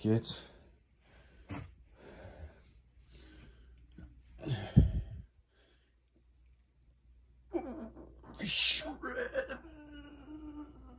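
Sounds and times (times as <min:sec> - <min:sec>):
man breathy exhale: 0:04.4 - 0:05.3
man hooting moan: 0:07.5 - 0:10.9.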